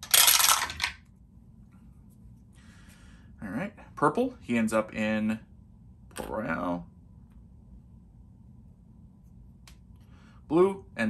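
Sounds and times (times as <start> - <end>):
dice rattling in dice tower: 0.0 - 1.1.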